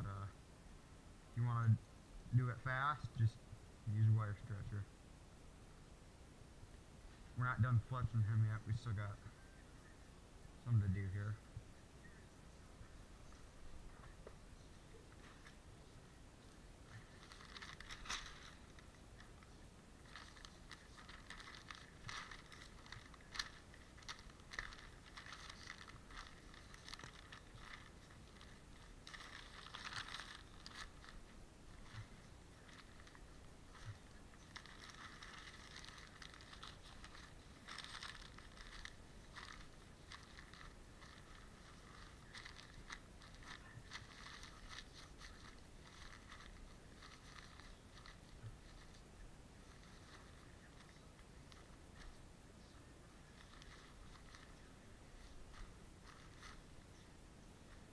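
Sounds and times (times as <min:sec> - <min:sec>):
newspaper rustling and crinkling: 0:16.8 - 0:57.1.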